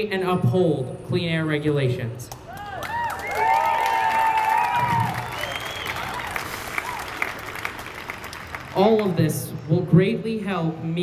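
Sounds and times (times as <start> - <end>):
crowd clapping: 2.3 - 9.3
crowd cheering and whooping: 2.5 - 8.3.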